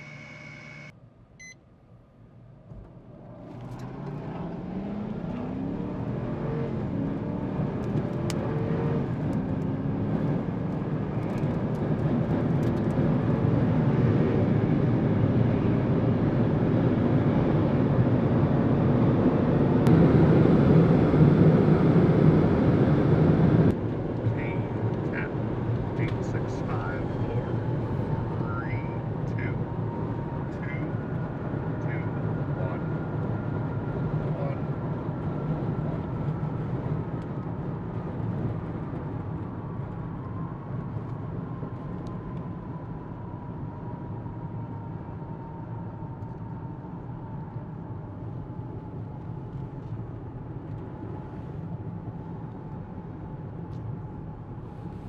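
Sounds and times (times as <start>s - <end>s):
jet engine whine and roar: 3.9s - 54.6s.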